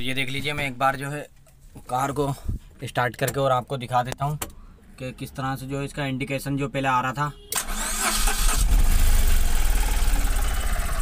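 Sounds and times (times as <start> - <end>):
car engine cranking and idling: 7.6 - 11.0.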